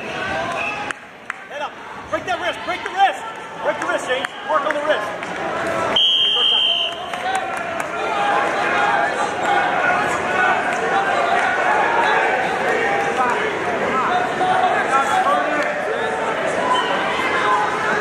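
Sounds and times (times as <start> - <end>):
crowd talking and calling out: 0.0 - 18.0
referee's whistle blast: 6.0 - 7.0.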